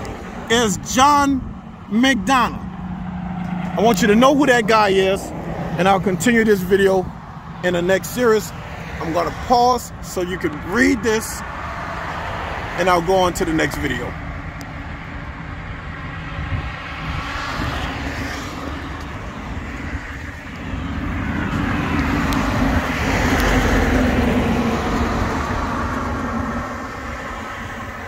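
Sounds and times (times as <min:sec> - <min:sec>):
truck passing: 0:00.0 - 0:28.0.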